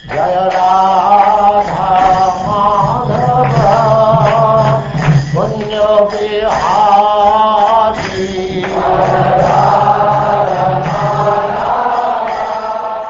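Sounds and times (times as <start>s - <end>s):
devotional chant with held notes: 0.0s - 13.0s.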